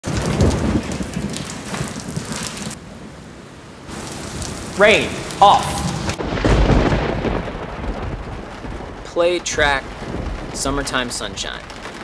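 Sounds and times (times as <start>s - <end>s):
rumbling thunder: 0.0s - 2.8s, 4.5s - 12.0s
heavy rain: 0.0s - 12.0s.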